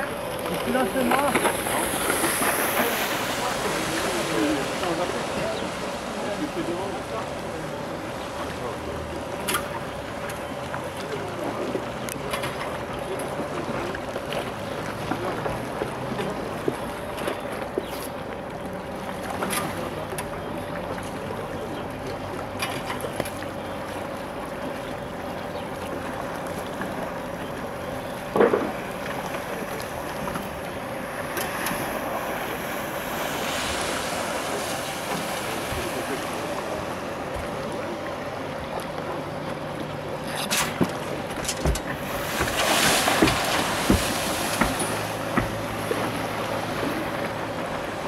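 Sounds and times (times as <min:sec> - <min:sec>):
water noise: 0:00.0 - 0:48.0
wind: 0:00.0 - 0:48.0.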